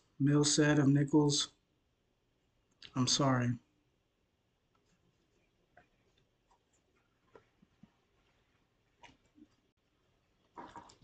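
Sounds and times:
person speaking: 0.1s - 1.6s, 2.7s - 3.8s
faint soft sounds: 1.9s - 11.0s.

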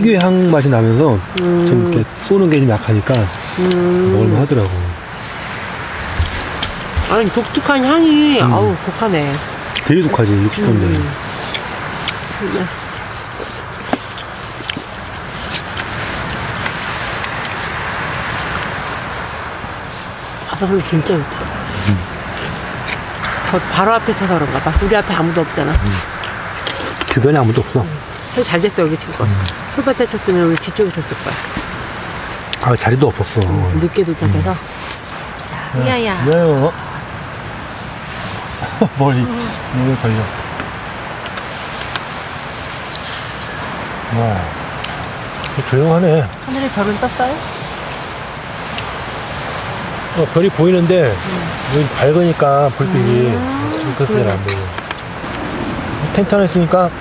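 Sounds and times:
sea waves breaking on shore: 4.5s - 10.0s, 11.2s - 27.2s, 28.0s - 32.5s, 37.0s - 38.6s, 46.4s - 50.2s.

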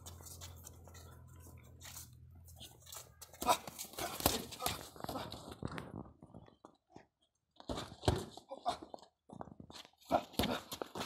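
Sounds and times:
feet shuffling on dirt: 0.0s - 5.4s.

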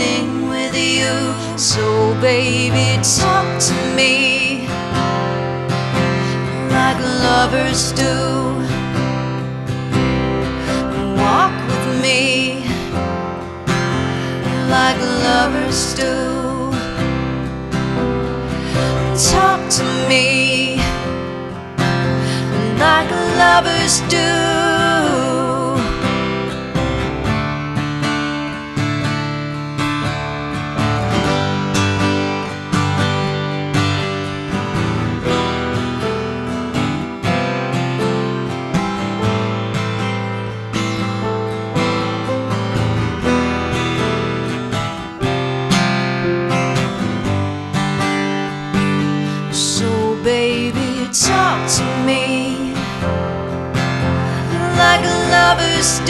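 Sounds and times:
wordless singing: 0.0s - 4.7s, 6.4s - 8.7s, 14.5s - 16.8s, 18.8s - 21.0s, 22.5s - 26.0s, 49.6s - 52.8s, 54.5s - 56.0s
acoustic guitar strumming: 0.0s - 56.0s.

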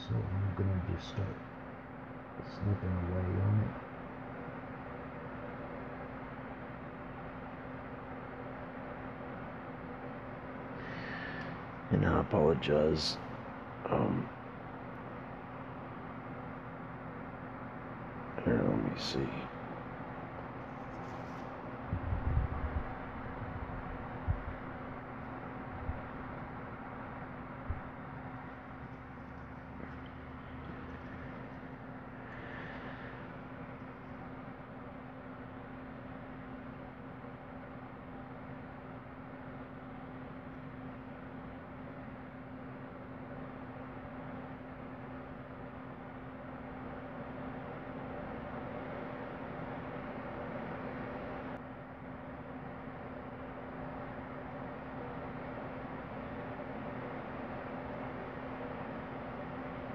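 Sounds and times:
steady low hum: 0.0s - 59.9s
short low thumps: 21.9s - 25.1s.

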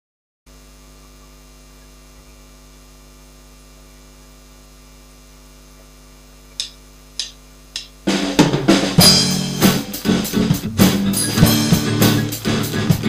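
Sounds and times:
electrical mains hum: 0.5s - 13.0s.

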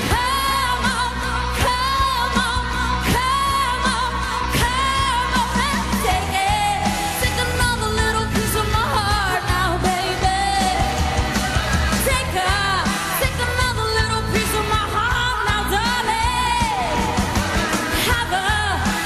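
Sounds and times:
pop-rock band playing: 0.0s - 19.0s
woman singing: 0.0s - 19.0s.

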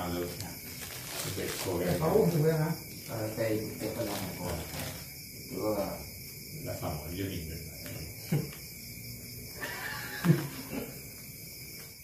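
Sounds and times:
low room murmur: 0.0s - 12.0s.

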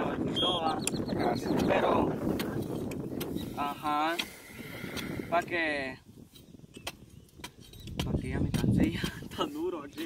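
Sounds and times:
stick knocking and scraping soil: 0.9s - 5.6s, 6.2s - 10.0s.

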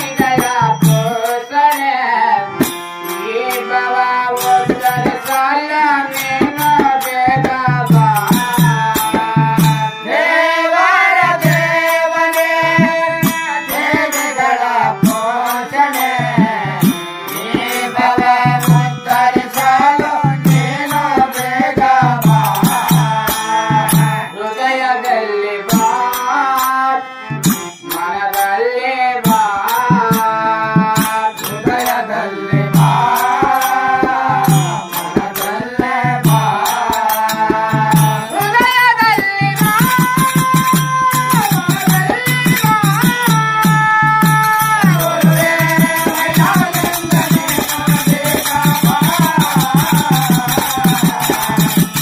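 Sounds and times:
harmonium: 0.0s - 52.0s
voices singing: 0.0s - 52.0s
tabla strokes: 29.3s - 52.0s
hand cymbals: 32.7s - 52.0s.

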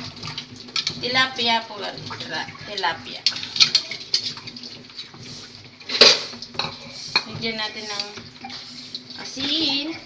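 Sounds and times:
broth boiling in metal pot: 0.0s - 10.0s.

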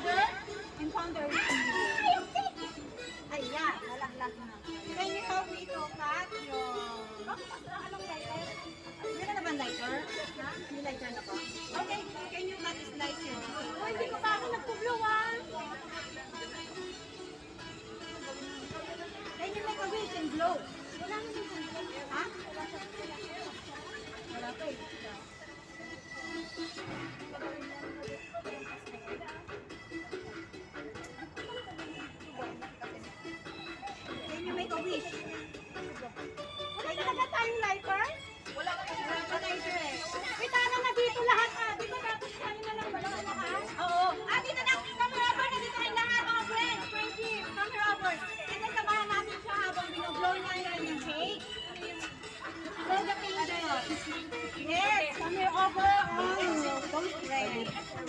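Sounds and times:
people chattering: 0.0s - 58.0s.

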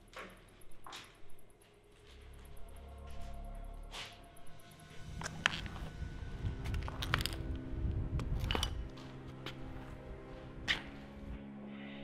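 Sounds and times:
background music with sustained tones: 0.0s - 12.0s.

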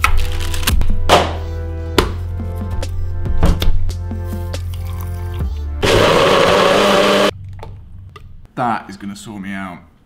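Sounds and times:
background music with bass: 0.7s - 8.4s
blender running: 5.8s - 7.3s.

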